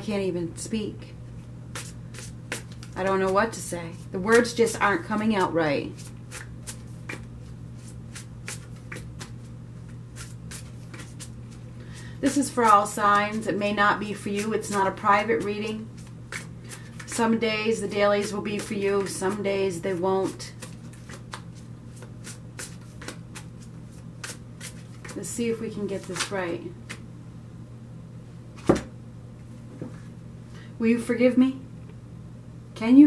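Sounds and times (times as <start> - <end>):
cards being shuffled: 1.7 - 3.0, 6.0 - 11.6, 16.0 - 17.2, 20.6 - 25.2, 26.0 - 27.0.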